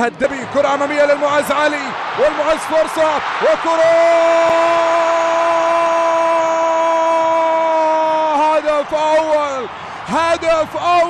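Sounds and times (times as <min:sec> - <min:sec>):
crowd noise: 0:00.0 - 0:11.0
commentator shouting: 0:00.3 - 0:11.0.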